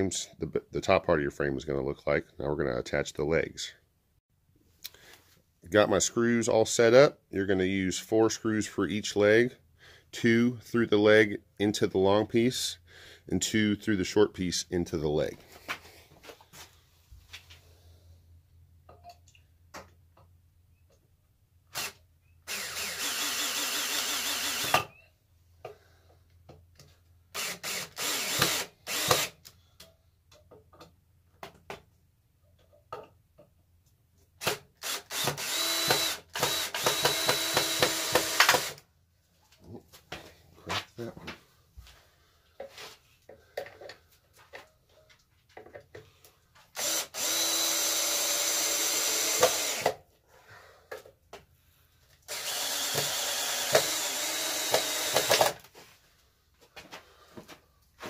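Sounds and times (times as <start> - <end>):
cordless drill driving screws: 21.7 - 25.0, 27.3 - 29.5, 34.4 - 38.8, 46.8 - 50.0, 52.3 - 55.6.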